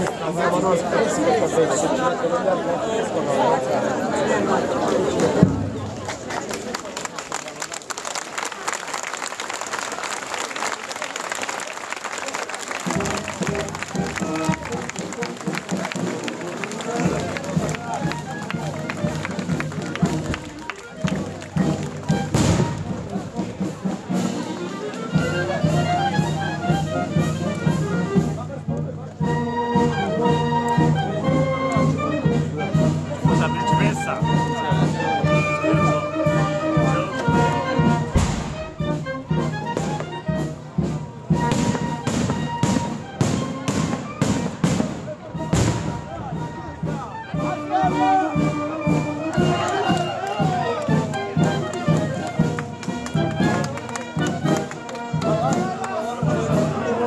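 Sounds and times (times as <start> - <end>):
brass band playing: 12.4 - 57.0.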